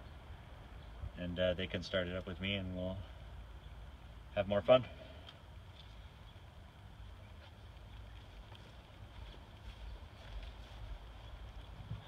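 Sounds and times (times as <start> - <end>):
faint outdoor background: 0.0 - 12.0
wind rumbling on microphone: 7.0 - 12.0.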